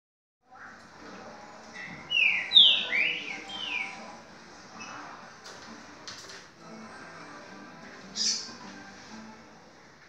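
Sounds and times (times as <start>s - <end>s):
songbird whistling: 2.1s - 4.0s.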